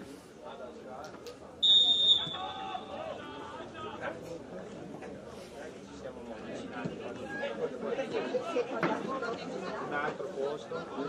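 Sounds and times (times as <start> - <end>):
referee's whistle blast: 1.6 - 2.6.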